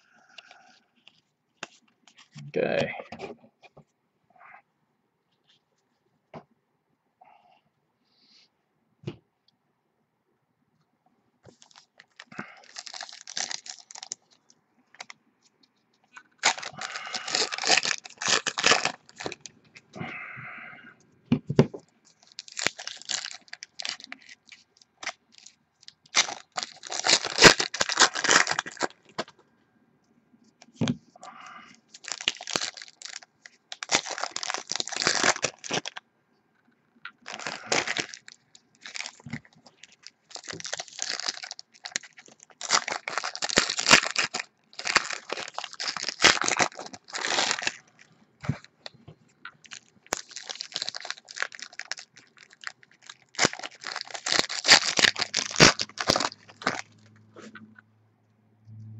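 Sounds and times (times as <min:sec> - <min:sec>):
wrappers crinkling: 0:11.5 - 0:15.1, 0:16.1 - 0:19.6, 0:22.0 - 0:29.3, 0:31.9 - 0:36.0, 0:37.1 - 0:48.1, 0:48.8 - 0:57.2
foil packs tearing: 0:11.6 - 0:14.2, 0:16.4 - 0:19.4, 0:22.2 - 0:24.4, 0:26.1 - 0:29.0, 0:32.0 - 0:36.0, 0:37.3 - 0:47.8, 0:49.7 - 0:56.9.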